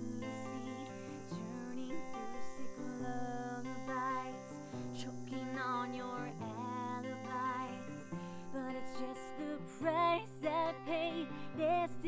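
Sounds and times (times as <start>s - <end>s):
acoustic guitar strumming: 0.0s - 12.0s
woman singing: 0.0s - 12.0s.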